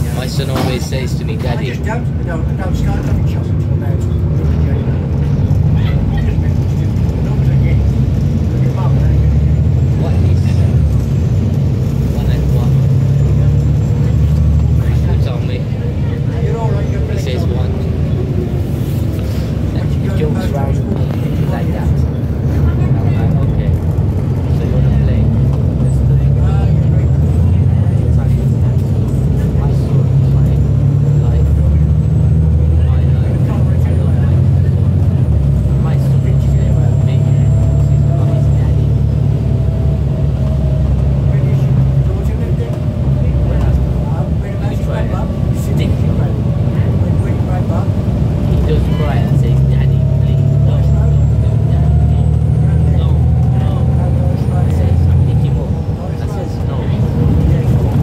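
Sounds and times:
bus diesel engine whining: 0.0 - 58.0.

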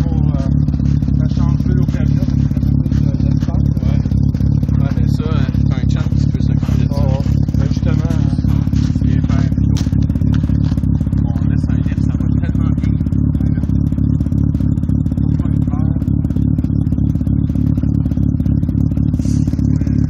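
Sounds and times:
rotary engine idling: 0.0 - 20.0.

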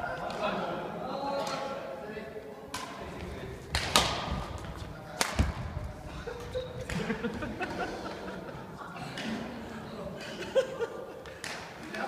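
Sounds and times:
rackets striking shuttlecock: 3.7 - 4.3.

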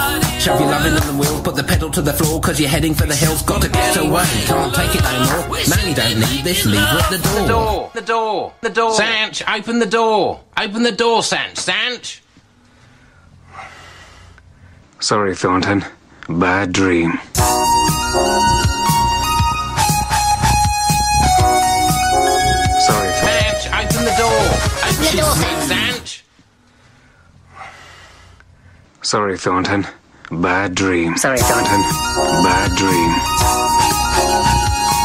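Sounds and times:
person breathing: 12.6 - 15.0, 26.6 - 29.0.

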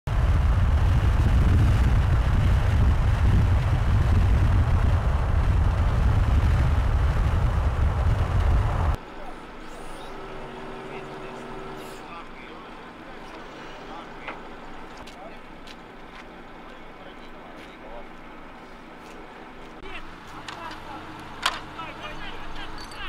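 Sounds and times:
quiet outdoor sound: 0.1 - 23.0
vehicle road and engine rumble: 0.1 - 23.0.

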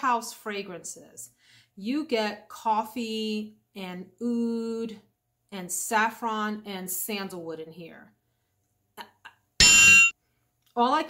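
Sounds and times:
bell-like ding: 9.6 - 10.2.

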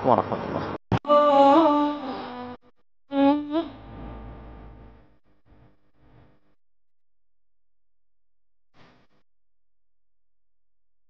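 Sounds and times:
low hum: 3.2 - 6.6.

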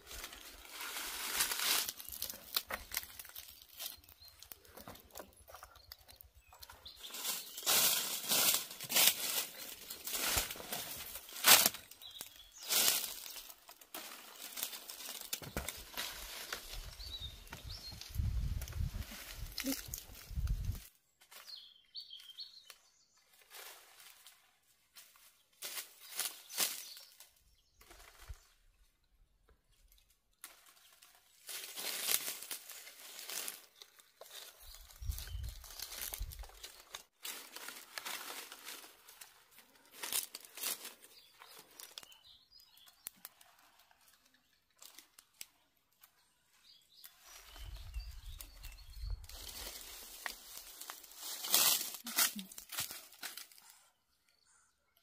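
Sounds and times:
dry leaves rustling and crackling: 0.0 - 21.5, 23.3 - 28.4, 30.4 - 45.6, 47.0 - 53.8.

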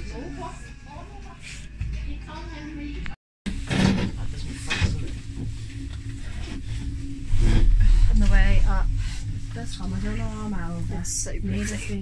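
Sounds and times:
gondola cabin rumble and hum: 3.5 - 12.0.

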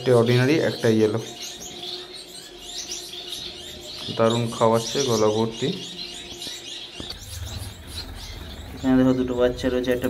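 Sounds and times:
finches chirping: 0.0 - 10.0.

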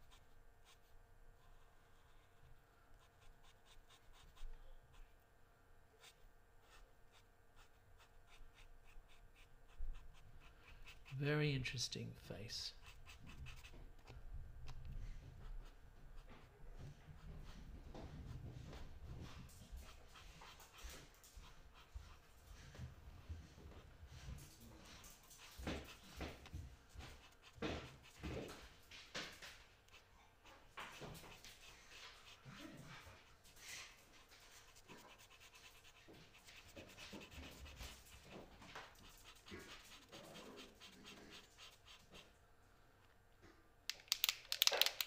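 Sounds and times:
marker scratching across paper: 0.0 - 5.0, 6.0 - 11.8, 12.7 - 14.2, 24.9 - 28.7, 29.4 - 33.1, 34.0 - 42.3.

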